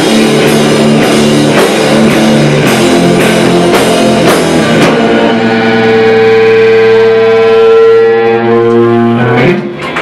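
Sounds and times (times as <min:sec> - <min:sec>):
sustained electric guitar chord: 0:00.0 - 0:09.8.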